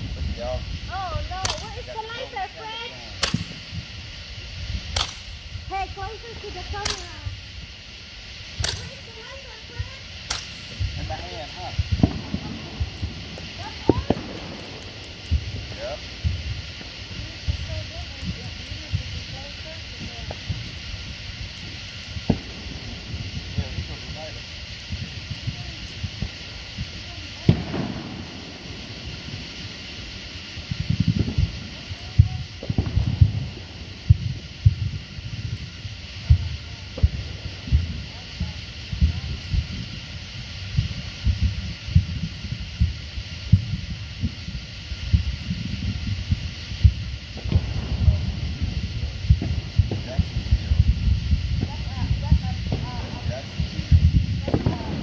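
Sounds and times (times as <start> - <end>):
steady high hiss: 0.0 - 55.0
faint indistinct voices: 8.6 - 42.4.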